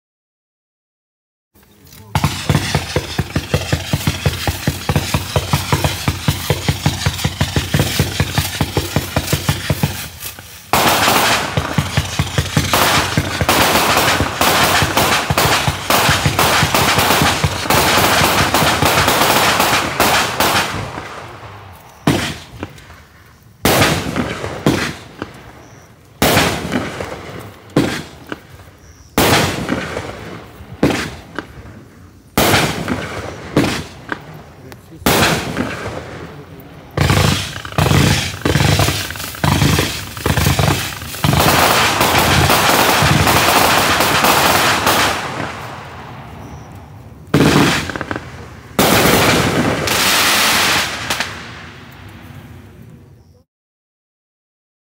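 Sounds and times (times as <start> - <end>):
firework cake firing: 1.6 - 53.4
loud firework bursts: 1.8 - 53.4.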